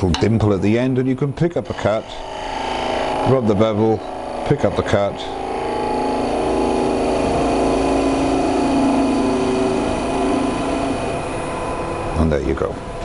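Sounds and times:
wood lathe running: 1.4s - 13.0s.

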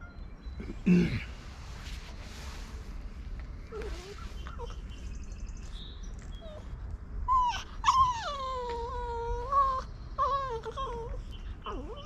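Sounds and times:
small dog whining: 3.7s - 4.9s, 6.3s - 12.0s.

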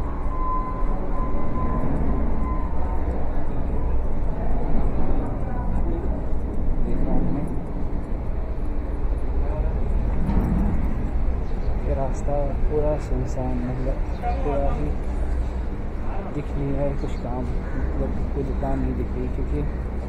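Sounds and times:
low rumble: 0.0s - 14.3s
traffic noise: 0.0s - 20.0s
voices of passers-by: 0.0s - 20.0s.

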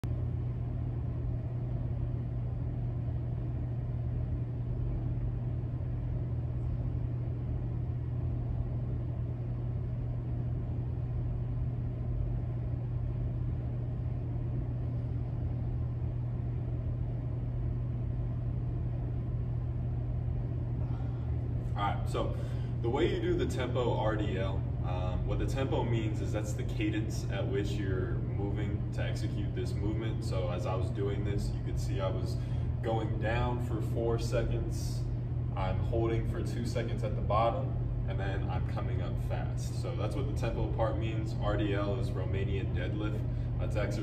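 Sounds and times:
low hum and rumble of room noise: 0.0s - 44.0s.

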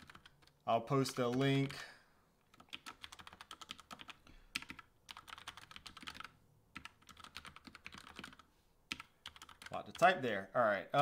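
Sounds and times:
typing on computer keyboard: 0.0s - 1.8s, 2.5s - 10.1s.

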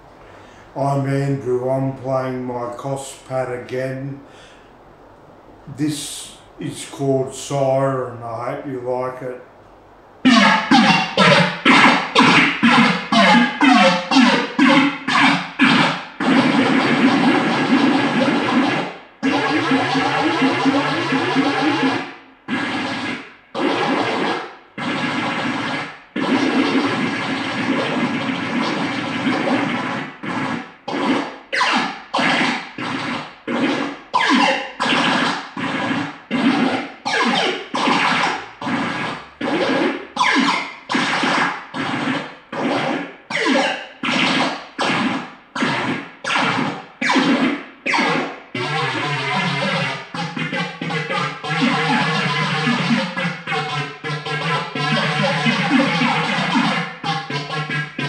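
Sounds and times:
noisy synth tones: 0.0s - 58.0s.

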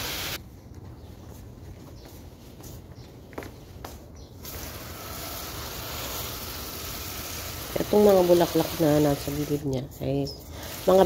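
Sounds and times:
hose nozzle spraying water: 0.0s - 0.4s, 4.4s - 9.8s, 10.5s - 11.0s.

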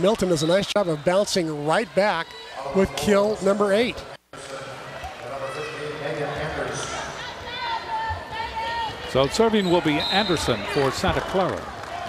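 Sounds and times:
murmur of spectators: 0.0s - 12.0s.

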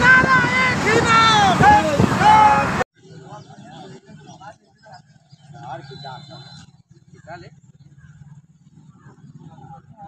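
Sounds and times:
voices shouting a chant: 0.0s - 2.8s
motorcycles running: 0.0s - 10.0s.

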